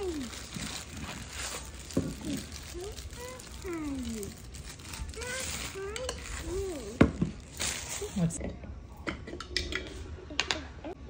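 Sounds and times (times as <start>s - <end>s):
plastic wrapping crinkling: 0.0s - 8.4s.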